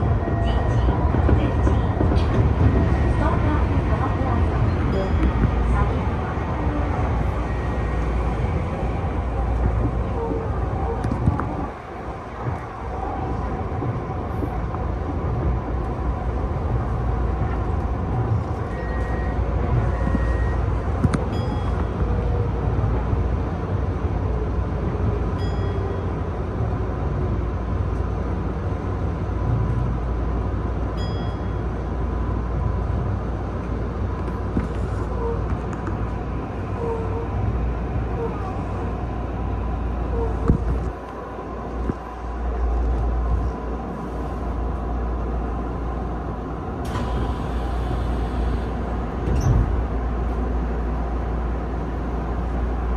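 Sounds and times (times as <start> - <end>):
train wheels rumbling on rails: 0.0 - 52.9.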